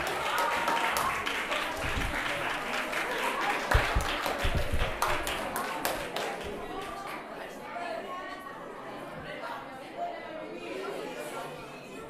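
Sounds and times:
students chattering: 0.0s - 12.0s.

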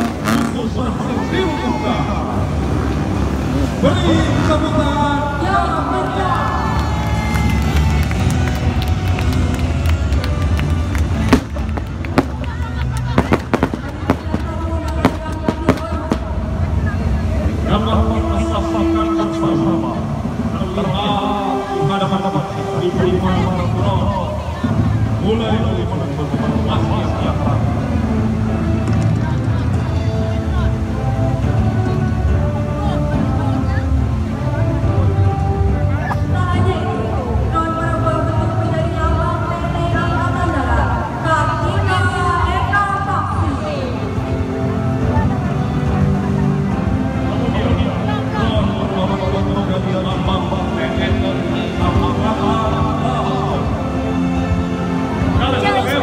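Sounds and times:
low outdoor rumble: 0.0s - 55.6s
music: 0.0s - 56.0s.

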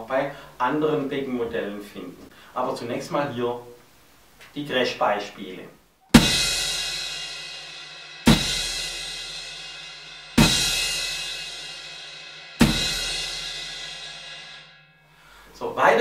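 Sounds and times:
crash cymbal hits: 6.1s - 15.4s
bass drum kick: 6.2s - 7.2s, 8.3s - 9.4s, 10.4s - 11.5s, 12.6s - 13.8s.

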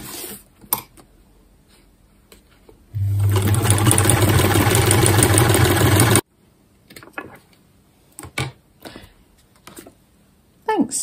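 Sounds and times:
sewing machine running: 3.0s - 6.2s.

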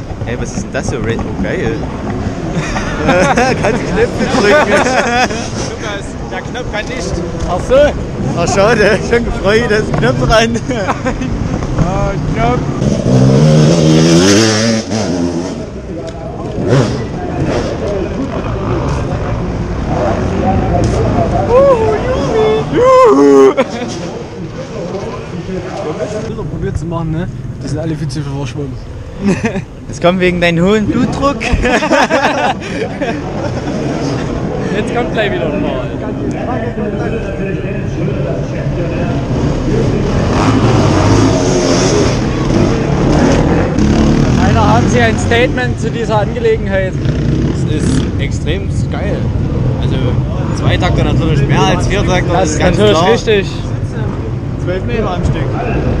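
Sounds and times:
motorcycle engines revving: 0.0s - 56.0s
motorcycle engine revving: 11.4s - 21.3s, 39.0s - 53.4s.

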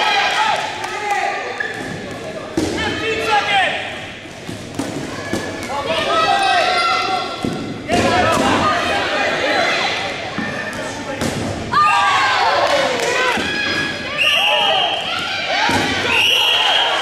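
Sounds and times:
dodgeballs thudding and bouncing: 0.4s - 6.3s, 7.3s - 9.0s, 10.1s - 17.0s
players shouting: 5.2s - 17.0s.

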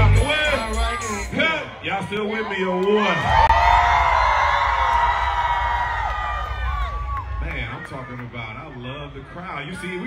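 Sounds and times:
heavy bass over speakers: 0.0s - 2.4s
concert crowd yelling: 0.0s - 10.0s.

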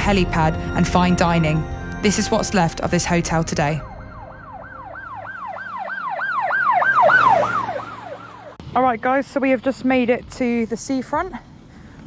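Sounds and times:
fast yelping siren: 3.8s - 8.6s.

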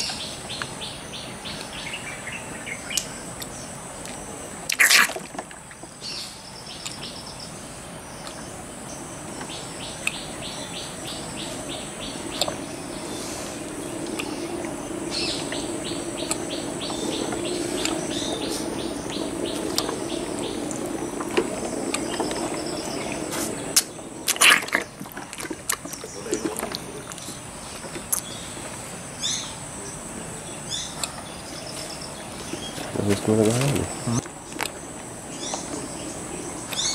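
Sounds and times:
insects chirping: 0.0s - 36.9s
elephant calf drinking from bottle: 21.9s - 28.3s.

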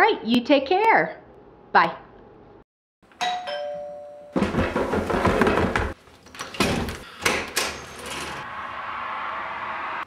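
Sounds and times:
two-tone doorbell chime: 3.2s - 4.4s
footsteps on wooden stairs: 4.4s - 6.0s.

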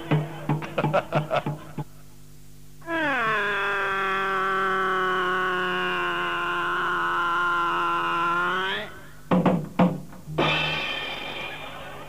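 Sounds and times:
person singing long note: 2.8s - 9.2s.

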